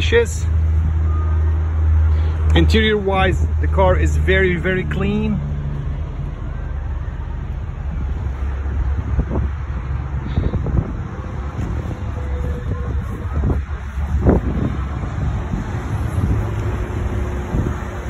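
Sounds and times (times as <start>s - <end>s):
wind rumbling on microphone: 5.4s - 18.0s.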